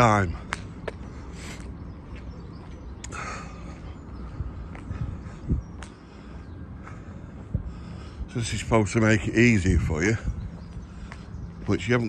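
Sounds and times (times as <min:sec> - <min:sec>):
footsteps on paved path: 0:00.0 - 0:12.0
low outdoor rumble: 0:00.0 - 0:12.0.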